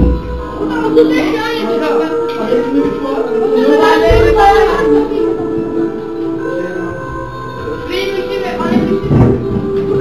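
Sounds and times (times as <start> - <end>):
music with long held tone: 0.0 - 10.0
people talking: 0.6 - 5.5, 7.8 - 9.1.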